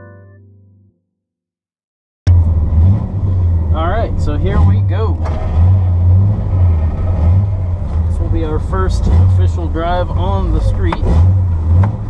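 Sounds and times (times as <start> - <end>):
car engine revving: 2.3 - 12.0.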